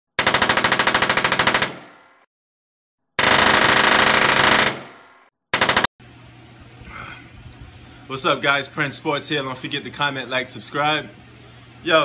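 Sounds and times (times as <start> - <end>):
automatic gunfire bursts: 0.2 - 2.0, 3.2 - 5.9.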